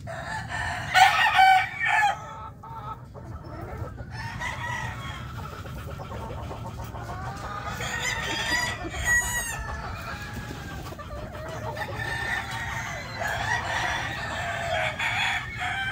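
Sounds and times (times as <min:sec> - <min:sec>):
roosters crowing: 0:00.0 - 0:15.9.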